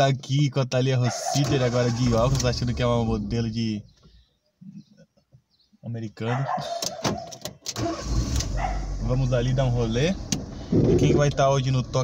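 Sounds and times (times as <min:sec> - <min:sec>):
car engine starting and running: 0:01.4 - 0:03.8, 0:07.5 - 0:12.0
ignition clicks: 0:06.8 - 0:08.6, 0:10.2 - 0:11.5.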